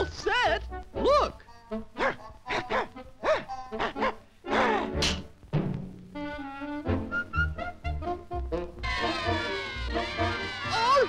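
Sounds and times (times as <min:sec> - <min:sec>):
low thumps: 0:05.0 - 0:06.2
cartoon orchestral music: 0:06.2 - 0:11.0
hens cackling laughter: 0:08.8 - 0:11.0.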